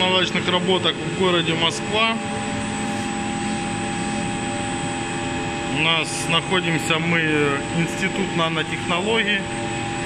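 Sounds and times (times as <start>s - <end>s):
milling machine humming and whining: 0.0s - 10.0s.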